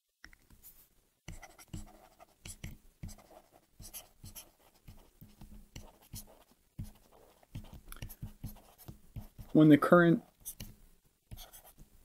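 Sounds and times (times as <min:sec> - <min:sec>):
stylus tapping and scratching: 0:01.3 - 0:11.9.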